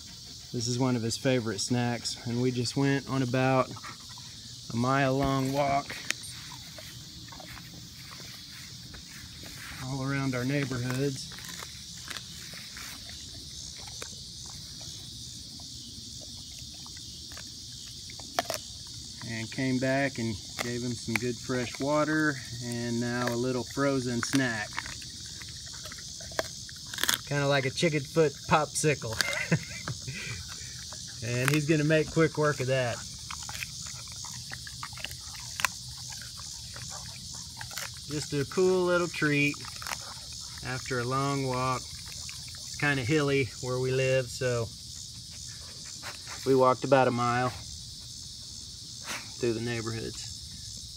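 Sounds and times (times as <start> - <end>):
insects chorus: 0.0 - 50.9
dog chewing with clicks: 10.4 - 19.3, 20.4 - 27.4, 30.4 - 42.9.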